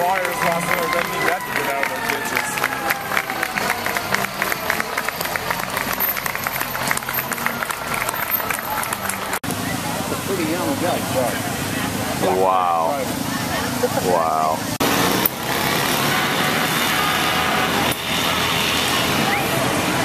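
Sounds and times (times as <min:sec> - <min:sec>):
crowd clapping: 0:00.0 - 0:09.5
crowd calling out: 0:00.0 - 0:10.1.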